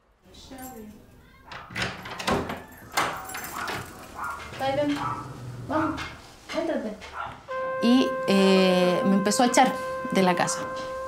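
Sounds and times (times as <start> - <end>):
wooden door opening: 1.5 - 7.4.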